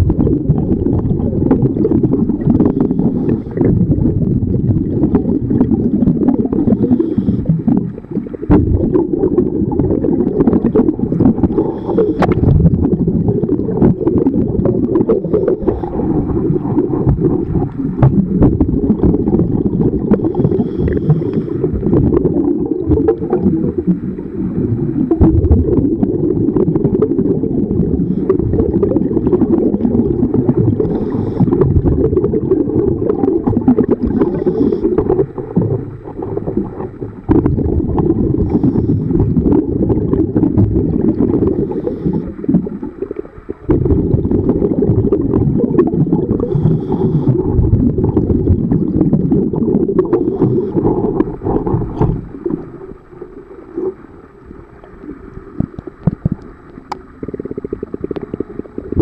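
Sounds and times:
underwater rumble: 0.0 - 59.0.

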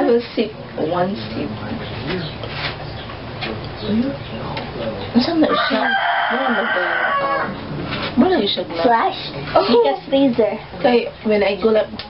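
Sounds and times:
rooster crowing: 5.4 - 7.7.

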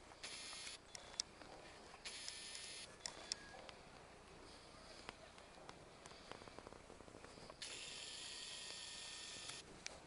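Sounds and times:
zoom lens motor whirring: 0.2 - 1.3, 2.0 - 3.5, 7.5 - 9.6.

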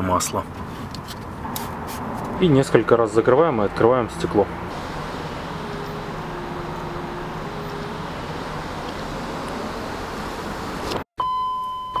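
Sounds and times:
background hiss: 4.7 - 11.0
electric window motor whirring: 4.7 - 11.0.

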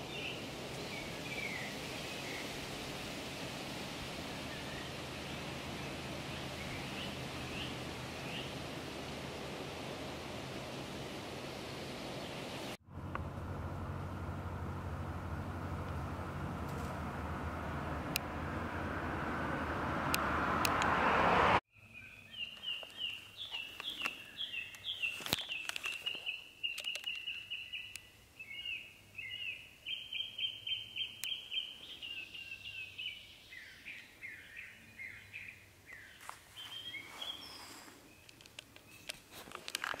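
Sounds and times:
songbird singing: 0.0 - 13.2, 21.7 - 40.0.

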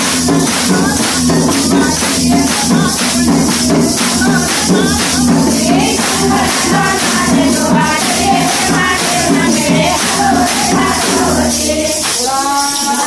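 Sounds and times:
hand clappers with jingles: 0.0 - 13.0
women singing together: 0.0 - 13.0.

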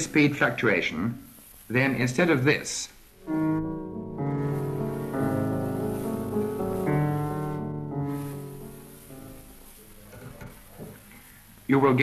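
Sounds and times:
piano music: 3.2 - 10.0.

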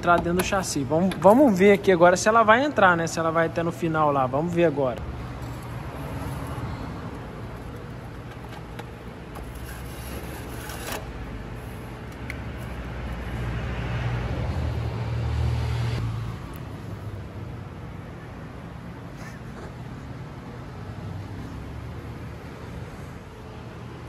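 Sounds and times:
motor traffic rumble: 0.0 - 24.0.

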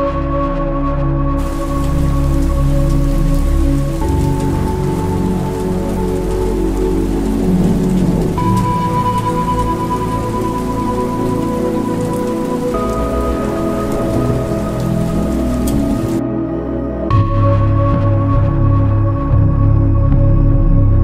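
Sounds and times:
slow ambient music: 0.0 - 21.0
steady rain falling: 1.4 - 16.2.

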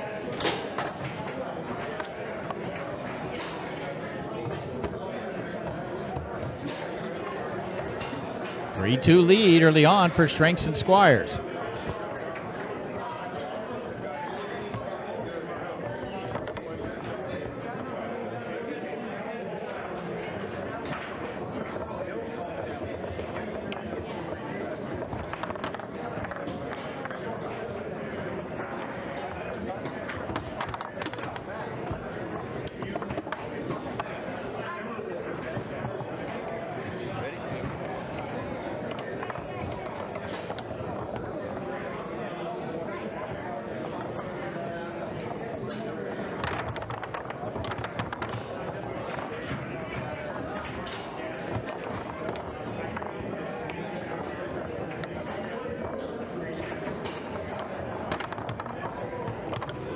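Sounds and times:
background chatter of people: 0.0 - 59.9
murmur of voices: 0.0 - 59.9
foosball rods and ball clacking: 24.6 - 27.5, 28.8 - 34.3, 35.4 - 42.1, 45.0 - 59.9.

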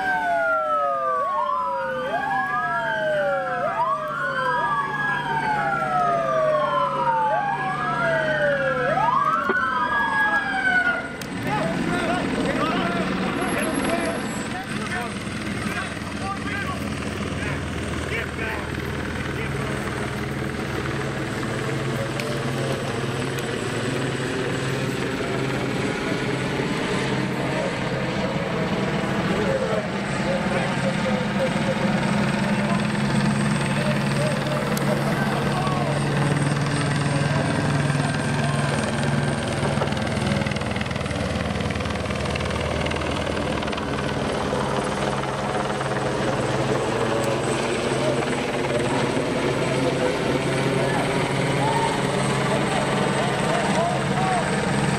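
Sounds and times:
helicopter rotor drone: 0.0 - 54.9.

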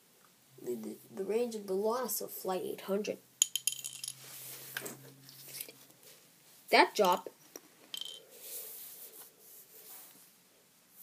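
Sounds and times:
faint rubbing against a surface: 4.1 - 6.6, 8.2 - 11.0.

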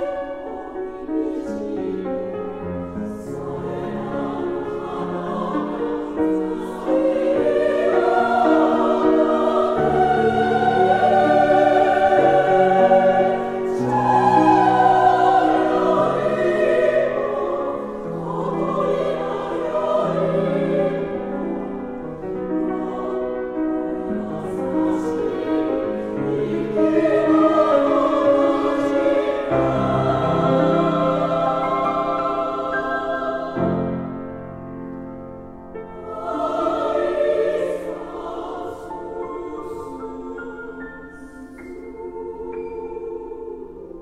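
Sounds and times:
piano accompaniment: 0.0 - 44.0
women's choir singing: 0.0 - 44.0.

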